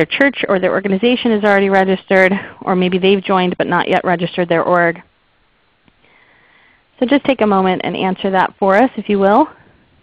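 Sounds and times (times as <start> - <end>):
short breath: 6.0 - 6.9.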